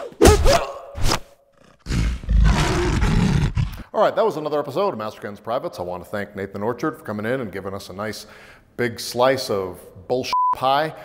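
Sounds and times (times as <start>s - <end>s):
sharp thud: 0.0s - 1.2s
drawn-out roar sound effect: 1.8s - 3.8s.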